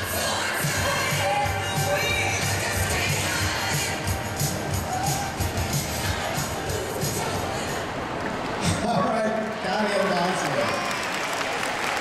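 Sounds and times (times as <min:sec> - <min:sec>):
crowd voices: 0:00.0 - 0:11.0
audience applauding: 0:09.0 - 0:12.0.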